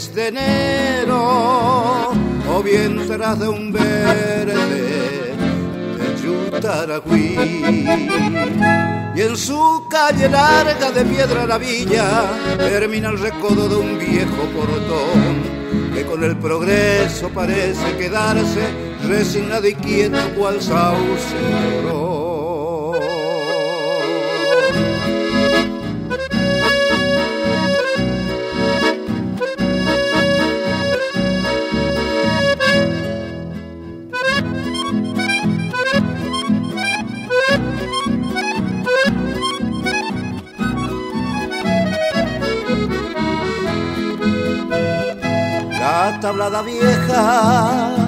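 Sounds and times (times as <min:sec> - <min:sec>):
bass: 0:00.0 - 0:23.2, 0:24.0 - 0:48.0
accordion melody: 0:00.0 - 0:48.0
plucked guitar: 0:00.0 - 0:48.0.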